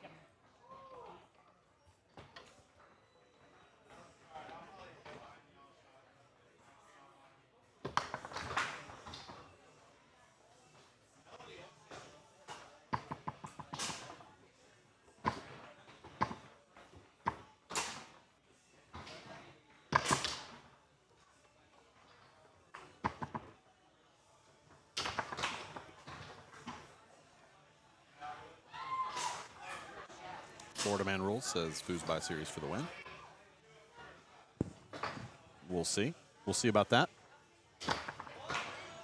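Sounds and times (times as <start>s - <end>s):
foosball plastic clacks: 12.9s - 14.1s, 23.0s - 23.5s.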